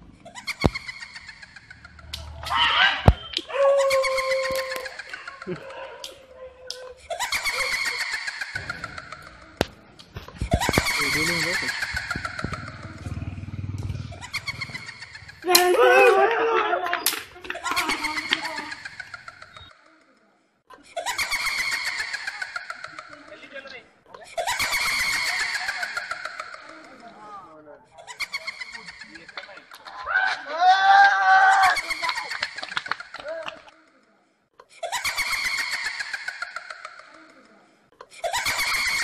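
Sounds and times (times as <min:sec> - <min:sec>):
person screaming in fright: 0:02.4 - 0:04.9, 0:15.4 - 0:16.9, 0:30.0 - 0:31.8
motorbike passing by: 0:11.0 - 0:16.2.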